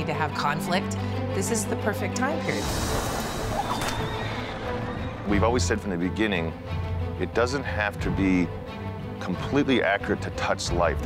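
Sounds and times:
background music: 0.0 - 11.0
horse whinnying: 3.2 - 5.3.

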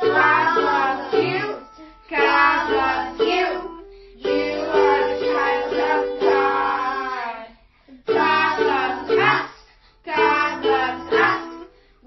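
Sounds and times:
ukulele strumming: 0.0 - 7.3, 8.1 - 11.8
children singing: 0.0 - 11.7.

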